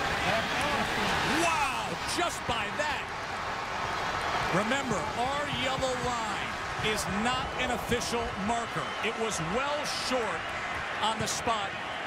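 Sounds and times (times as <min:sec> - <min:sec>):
stadium crowd noise: 0:00.0 - 0:12.0.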